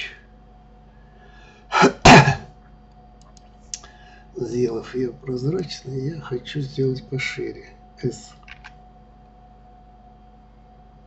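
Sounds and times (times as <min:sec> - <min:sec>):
faint constant whine: 0:00.0 - 0:11.0.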